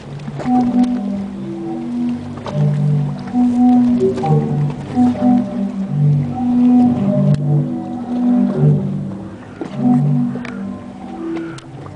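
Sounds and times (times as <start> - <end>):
sea organ pipes sounding low tones: 0.0 - 11.9.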